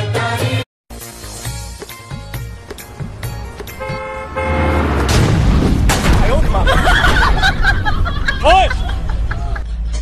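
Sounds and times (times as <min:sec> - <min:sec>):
music with a beat: 0:00.0 - 0:03.8
car horn: 0:03.3 - 0:05.2.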